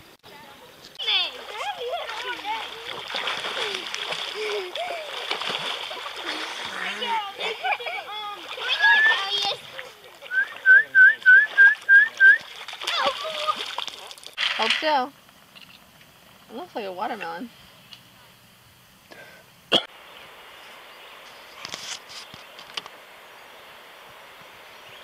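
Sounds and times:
voices calling: 0.2 - 18.4
water splashing: 1.0 - 15.7.

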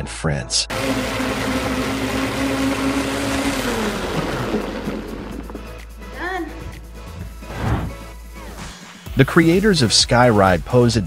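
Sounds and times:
blender whirring: 0.7 - 6.2.

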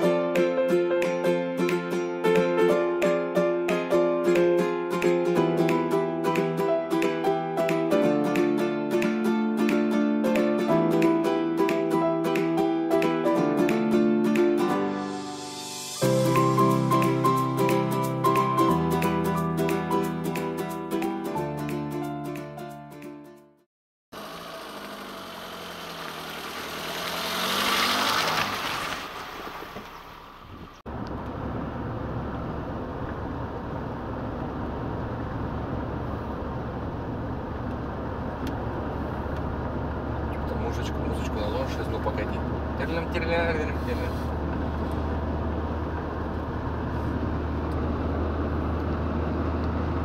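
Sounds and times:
van engine and road noise: 24.1 - 50.0
vehicle passing with falling pitch: 24.2 - 33.5.

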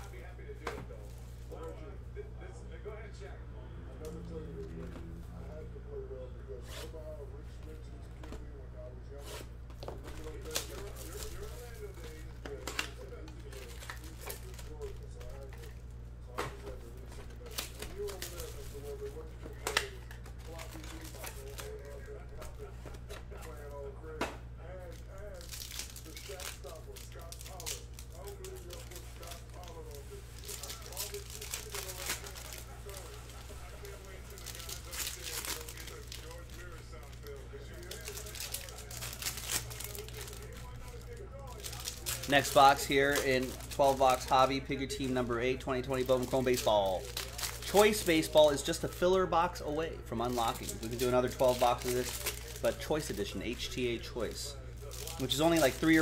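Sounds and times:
card pack wrappers crinkling: 9.1 - 15.8, 16.5 - 56.0.

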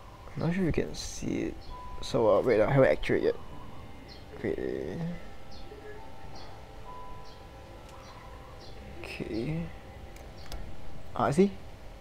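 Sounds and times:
faint high chirps: 0.0 - 11.3.

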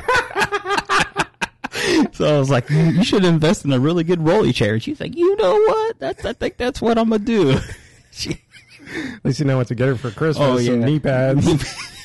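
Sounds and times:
men laughing: 0.0 - 3.7, 5.8 - 9.2, 11.3 - 12.0
breath: 1.7 - 2.1, 8.8 - 9.2.

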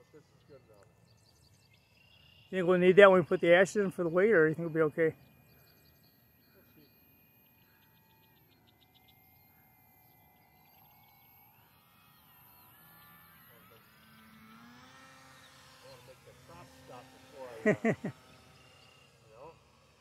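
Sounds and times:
model plane motor whine: 1.1 - 20.0.

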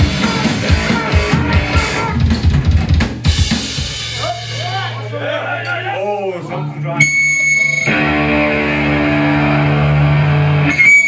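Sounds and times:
high-pitched feedback whine: 7.0 - 8.4
electric guitar droning note: 7.0 - 11.0.

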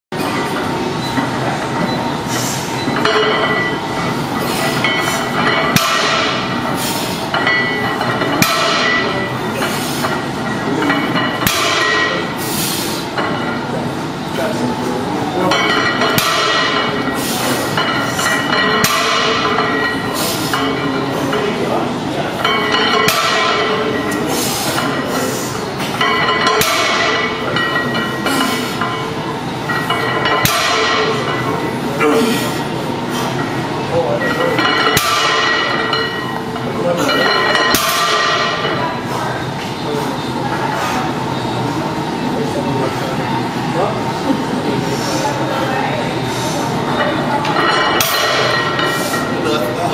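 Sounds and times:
weight plates knocking and clinking: 2.8 - 12.3, 15.4 - 21.6, 22.3 - 25.2, 25.8 - 31.9, 33.3 - 39.0, 47.0 - 49.9.

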